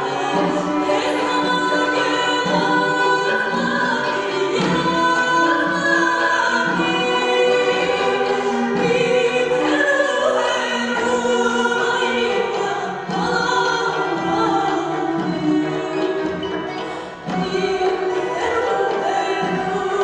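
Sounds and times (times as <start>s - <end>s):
folk instrumental ensemble: 0.0s - 20.0s
woman singing folk song: 0.0s - 20.0s.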